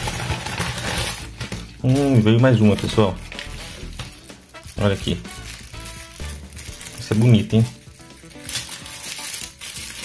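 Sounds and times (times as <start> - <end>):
plastic bag crinkling: 0.0 - 10.0
quiet background music: 0.0 - 10.0.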